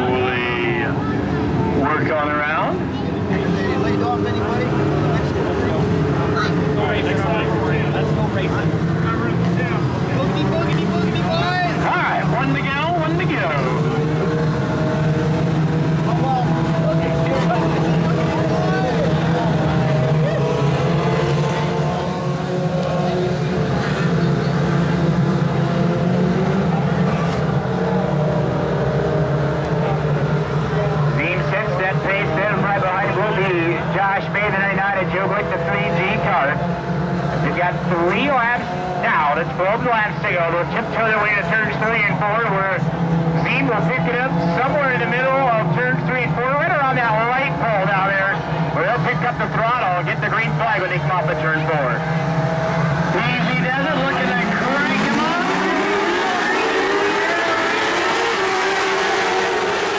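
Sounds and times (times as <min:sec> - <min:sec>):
crowd voices: 0:00.0 - 0:59.9
race car engines running: 0:00.0 - 0:59.9.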